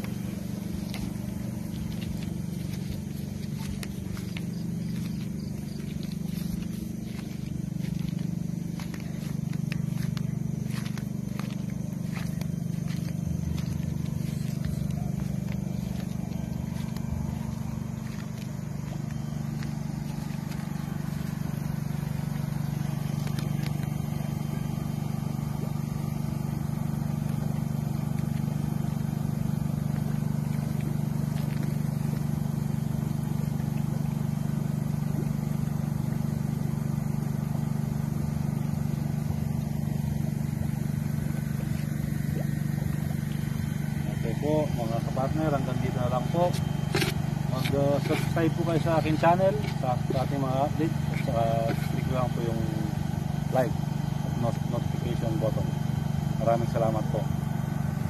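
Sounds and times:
low mechanical hum: 0.0s - 58.0s.

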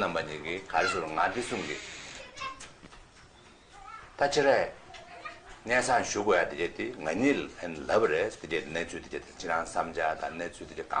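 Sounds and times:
person speaking: 0.0s - 2.7s.

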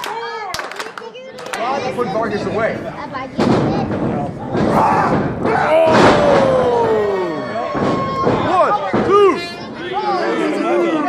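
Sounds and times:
spectators shouting: 4.7s - 11.0s.

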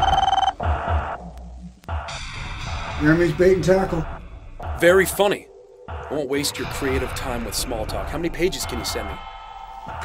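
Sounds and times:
electronic telephone ringing: 0.0s - 0.6s
noise: 0.0s - 3.0s.

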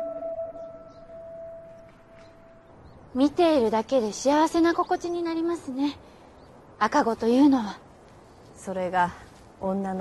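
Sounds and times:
soft held music chord: 0.0s - 2.6s.

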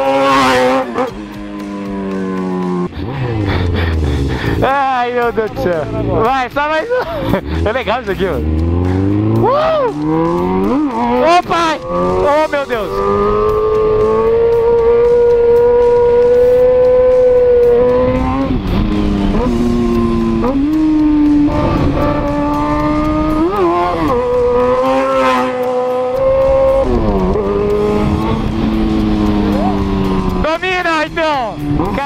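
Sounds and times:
motorcycle engine running: 0.0s - 32.0s.

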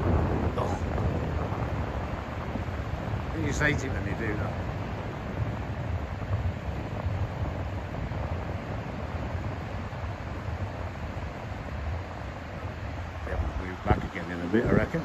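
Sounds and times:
surf hissing on shore: 0.0s - 15.0s
wind rumbling on microphone: 0.0s - 15.0s.

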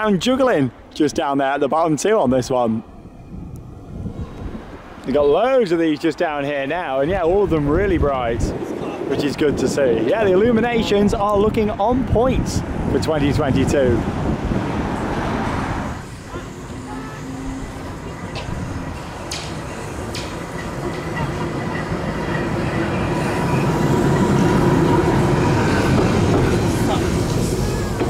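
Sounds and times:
tram rumbling along track: 2.2s - 28.0s.

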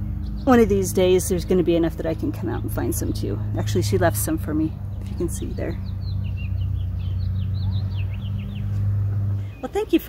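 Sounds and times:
steady low hum: 0.0s - 9.8s
small birds chirping: 0.0s - 10.0s.

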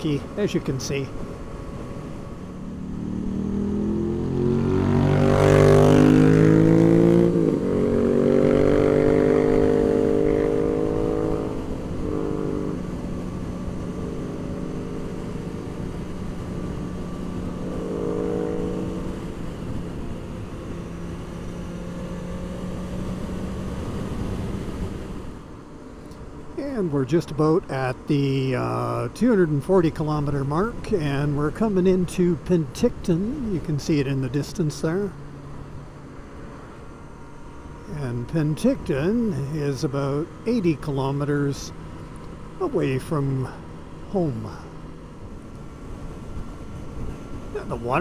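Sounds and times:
wind and road rush: 0.0s - 48.0s
motorcycle engine accelerating: 1.2s - 48.0s.

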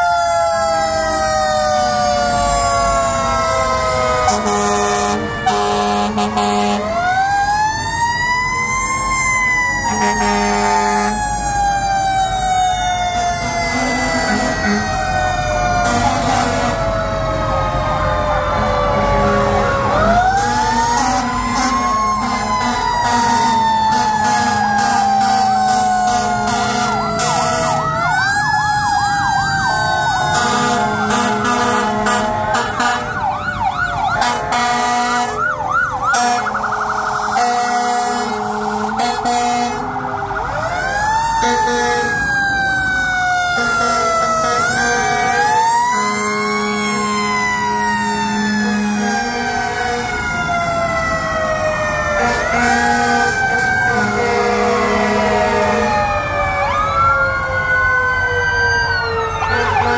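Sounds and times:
fast warbling siren: 0.0s - 59.9s
wailing fire engine siren: 0.0s - 59.9s.

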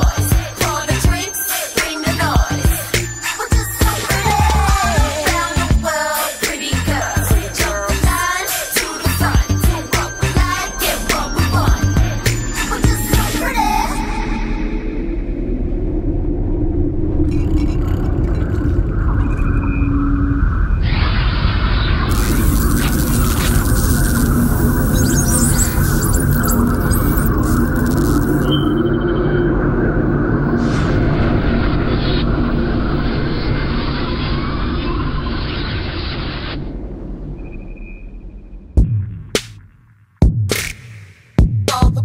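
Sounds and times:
deep rumbling: 9.2s - 39.3s
brief whoosh: 30.5s - 38.6s.

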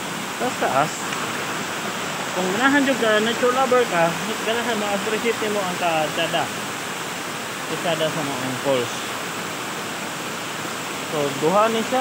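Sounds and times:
small waterfall rushing: 0.0s - 12.0s.

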